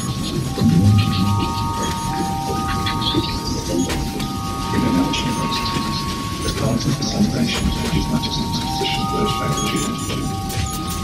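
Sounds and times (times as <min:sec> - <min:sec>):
crackling rain-like hiss: 0:00.0 - 0:11.0
steady high tones: 0:00.0 - 0:11.0.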